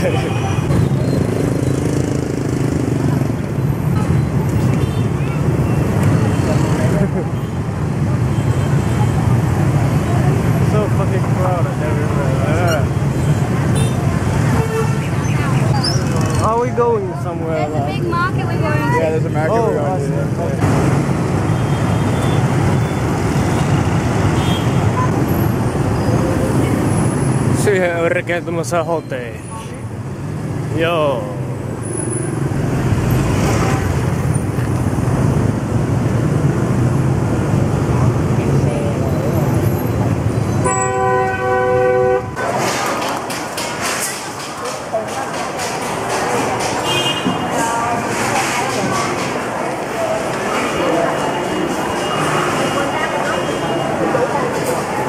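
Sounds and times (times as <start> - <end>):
motorbike and scooter traffic: 0.0 - 55.0
people's voices: 4.0 - 7.7, 8.8 - 20.8, 42.4 - 55.0.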